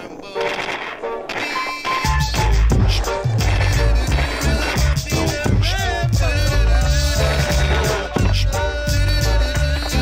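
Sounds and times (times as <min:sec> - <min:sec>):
skateboard wheels rolling on paving: 0:00.0 - 0:10.0
bass-heavy music beat: 0:02.0 - 0:10.0.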